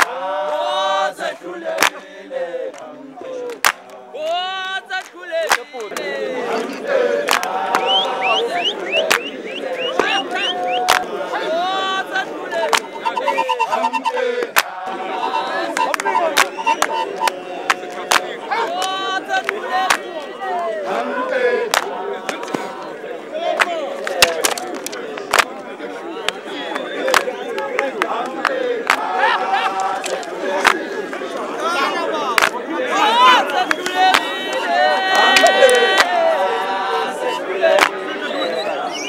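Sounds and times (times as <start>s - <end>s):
crowd shouting and cheering: 0.0s - 39.0s.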